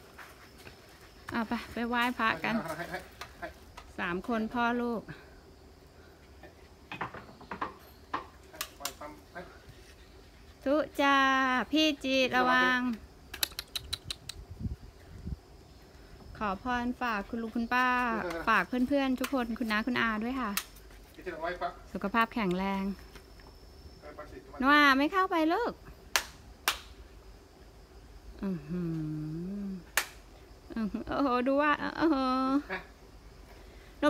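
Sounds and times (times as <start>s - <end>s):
sharp hand claps: 26.1s - 26.9s, 30.0s - 30.2s.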